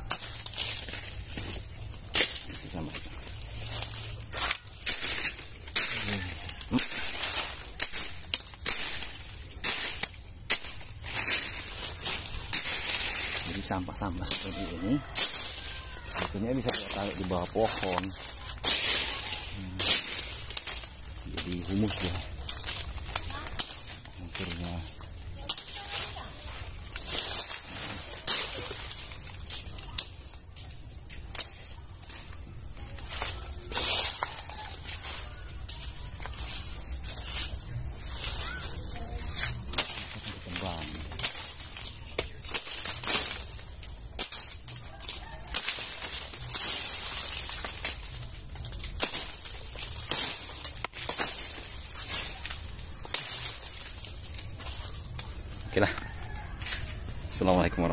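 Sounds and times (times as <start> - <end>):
leaves rustling against phone: 0.0 - 57.9.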